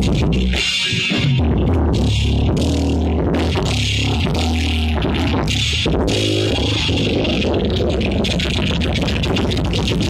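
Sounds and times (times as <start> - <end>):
bass guitar notes: 0.0 - 10.0
rock band playing loud: 0.0 - 10.0.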